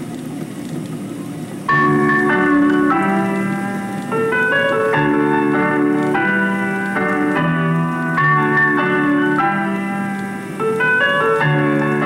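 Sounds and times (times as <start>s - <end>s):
piano chords: 1.6s - 12.0s.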